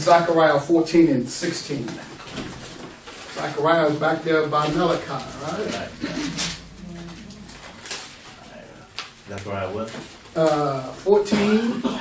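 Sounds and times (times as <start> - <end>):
person humming: 5.6 - 7.7
thin pages turning: 7.4 - 10.7.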